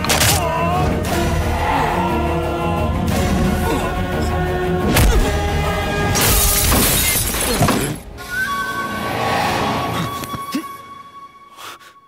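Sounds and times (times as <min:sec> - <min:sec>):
dramatic film score: 0:00.0 - 0:12.0
glass table shattering: 0:06.2 - 0:08.0.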